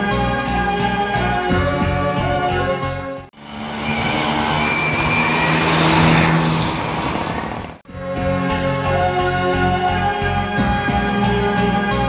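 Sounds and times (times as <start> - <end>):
motor vehicle passing by: 3.4 - 7.8.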